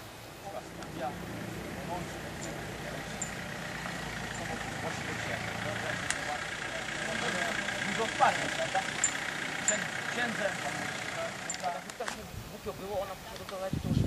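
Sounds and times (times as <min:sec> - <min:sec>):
vehicle engine idling: 0:00.0 - 0:13.3
distant voices: 0:00.0 - 0:13.7.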